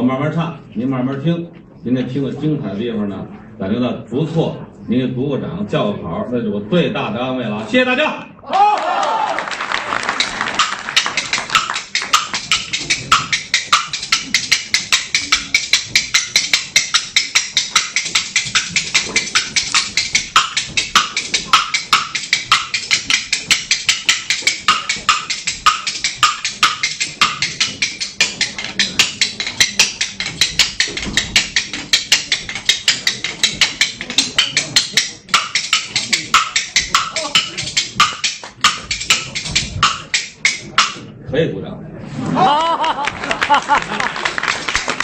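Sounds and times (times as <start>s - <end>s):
bamboo clappers clacking: 10.0s - 41.0s.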